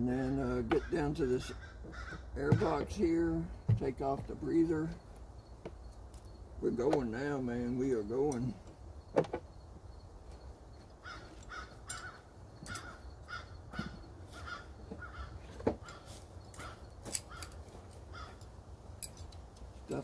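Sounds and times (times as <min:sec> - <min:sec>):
bird calling: 0:00.2 - 0:18.5
sharp clicks and knocks: 0:08.3 - 0:09.5.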